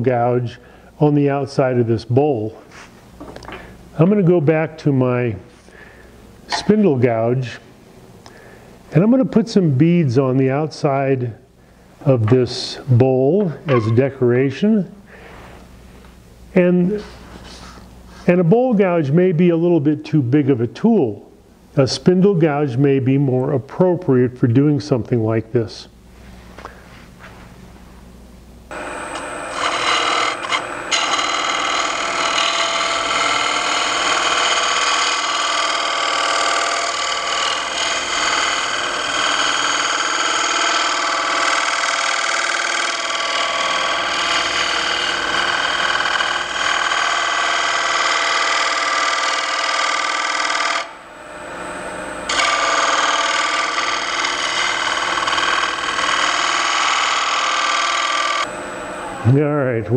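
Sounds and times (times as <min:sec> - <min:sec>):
gouge cutting wood on lathe: 0:28.7 - 0:59.3.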